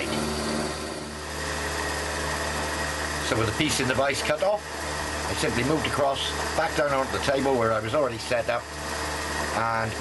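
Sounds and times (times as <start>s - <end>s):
milling machine cutting metal: 0.0s - 10.0s
thin high whine: 0.0s - 10.0s.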